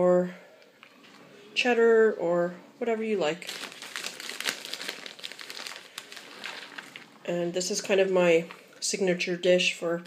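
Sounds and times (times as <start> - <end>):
aluminium foil pan crinkling: 3.4 - 7.2.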